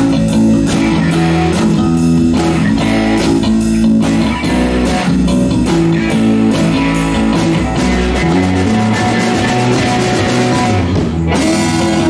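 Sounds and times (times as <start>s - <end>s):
drum kit beat: 0.0s - 12.0s
electric bass: 0.0s - 12.0s
electric guitar: 0.0s - 12.0s.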